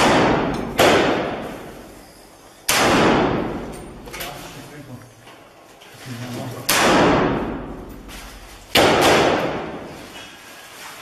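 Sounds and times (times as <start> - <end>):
gunshots reverberating indoors: 0.0 - 2.0, 2.6 - 4.2, 6.6 - 10.2.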